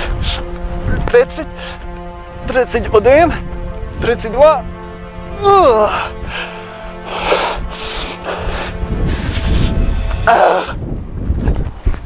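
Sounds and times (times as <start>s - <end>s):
background music: 0.0s - 12.0s
man breathing hard: 1.5s - 2.2s, 5.9s - 10.8s.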